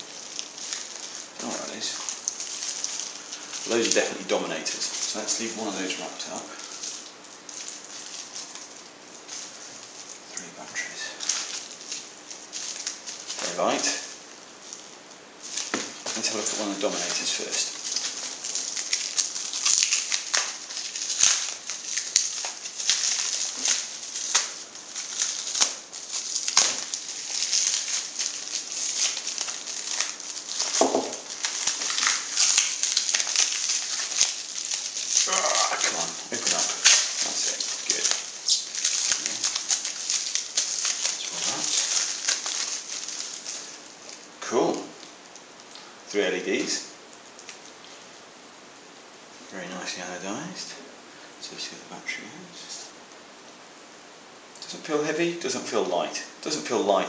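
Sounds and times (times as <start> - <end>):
plastic wrap crinkling and tearing: 0.0 - 48.2.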